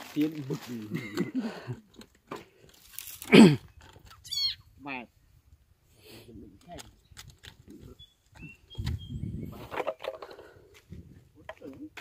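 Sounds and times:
frog calling: 0:04.2 - 0:04.7.

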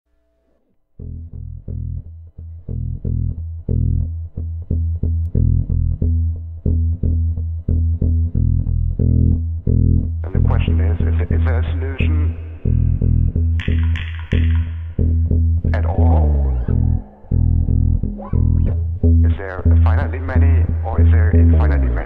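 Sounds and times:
bass guitar riff: 0:01.0 - 0:22.0.

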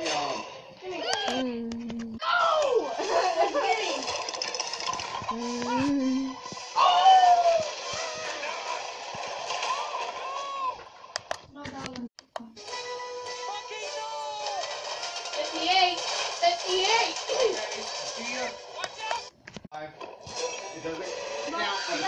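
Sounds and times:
cartoon soundtrack from television: 0:00.0 - 0:22.0.

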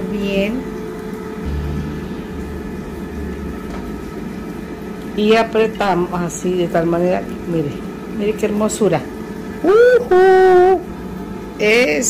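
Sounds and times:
steady mechanical hum: 0:00.0 - 0:12.0
deep rumble: 0:01.4 - 0:08.0.

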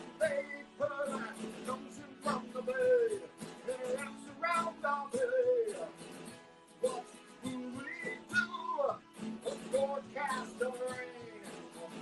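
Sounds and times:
man singing: 0:00.0 - 0:06.0, 0:06.8 - 0:12.0
acoustic guitar strumming: 0:00.0 - 0:12.0.

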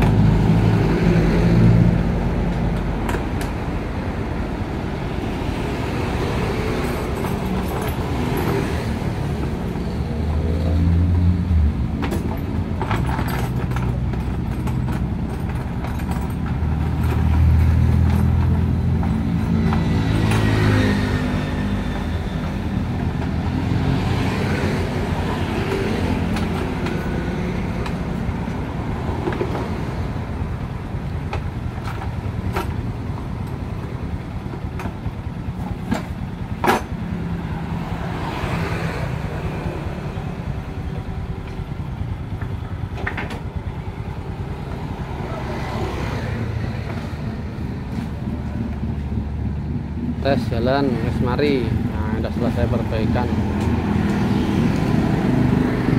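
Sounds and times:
road traffic passing: 0:00.0 - 0:55.9.

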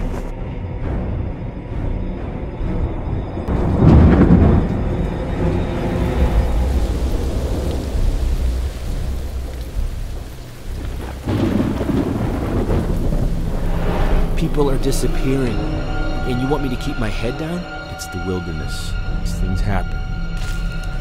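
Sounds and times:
thunder rumbling: 0:03.5 - 0:17.7
steady rain: 0:03.5 - 0:21.0.

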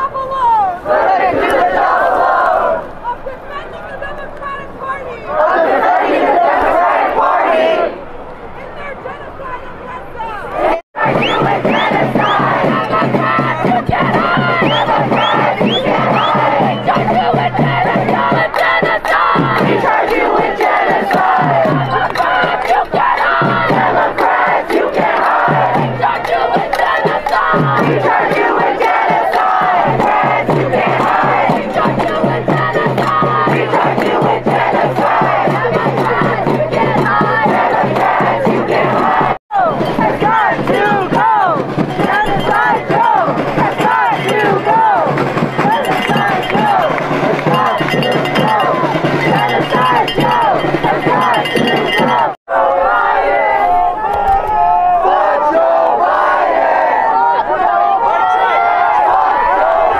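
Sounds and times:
crowd shouting: 0:00.0 - 0:04.0, 0:05.0 - 0:59.9.

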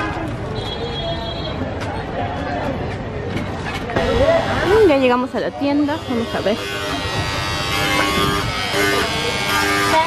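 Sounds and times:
people's voices: 0:00.0 - 0:10.0
electric fan motor buzzing: 0:05.6 - 0:10.0.

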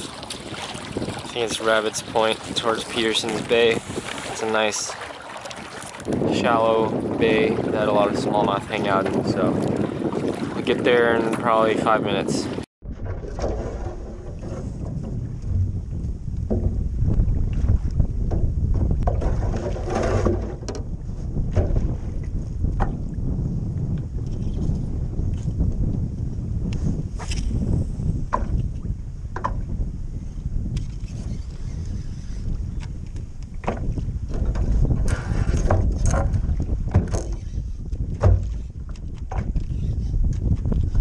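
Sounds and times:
waves lapping against hull: 0:00.0 - 0:41.0
wind buffeting microphone: 0:00.0 - 0:41.0.

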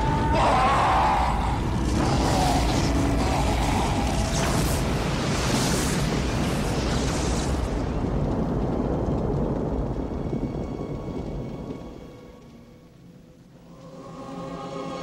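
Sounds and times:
deep noisy rumble: 0:00.0 - 0:15.0.

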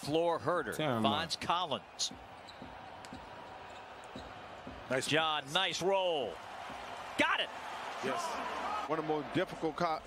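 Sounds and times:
low arena background: 0:00.0 - 0:10.0.

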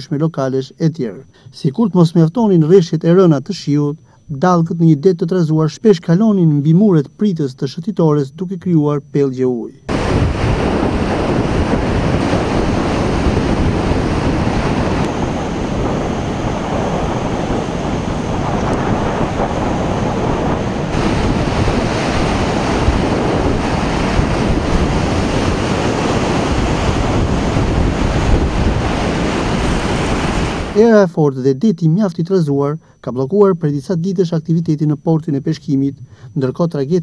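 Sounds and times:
wind buffeting microphone: 0:09.9 - 0:30.8
sea surf washing ashore: 0:09.9 - 0:31.0.

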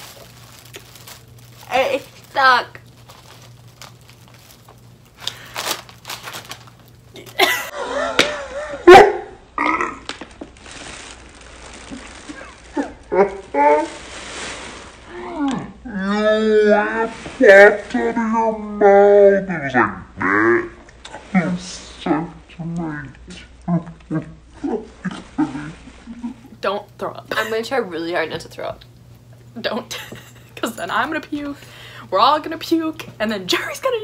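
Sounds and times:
woman gagging and retching: 0:09.6 - 0:10.2.

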